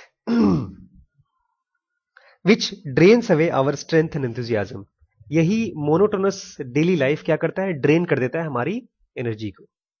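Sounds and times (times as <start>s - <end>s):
man coughing: 0.2s - 0.9s.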